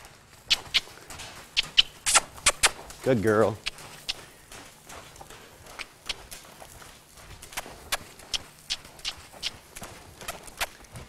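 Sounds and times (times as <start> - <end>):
horse hoofbeats trotting: 0.0 - 11.0.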